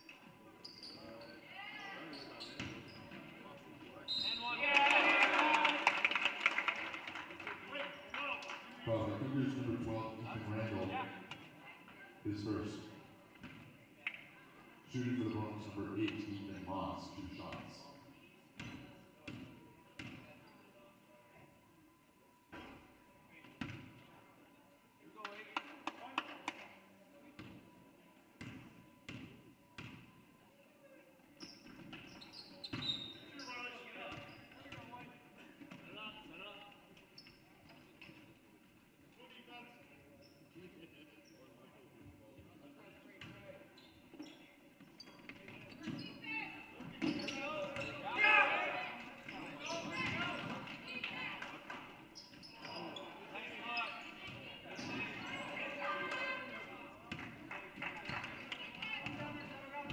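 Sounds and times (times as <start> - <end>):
voices and shouts: 4.2 - 6.0, 47.3 - 51.5, 52.7 - 57.0.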